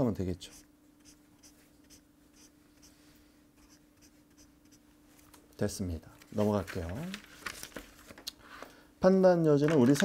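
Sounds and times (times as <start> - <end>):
highlighter strokes on paper: 0.5 - 4.8.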